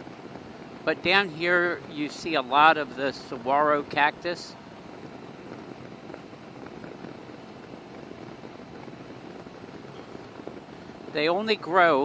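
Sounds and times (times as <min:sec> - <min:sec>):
three-wheeler engine cruising: 0:00.0 - 0:12.0
wind and road noise: 0:00.0 - 0:12.0.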